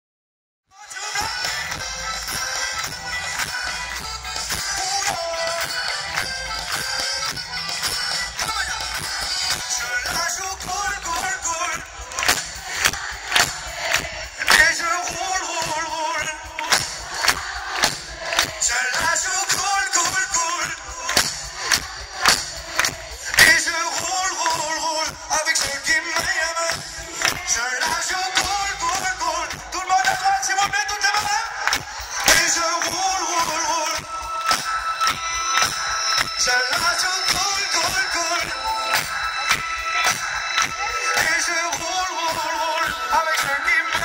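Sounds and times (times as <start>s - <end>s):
crowd singing and shouting: 0.7s - 44.0s
vocals: 0.7s - 44.0s
live pop band playing: 0.8s - 44.0s
steady drum beat: 1.2s - 44.0s.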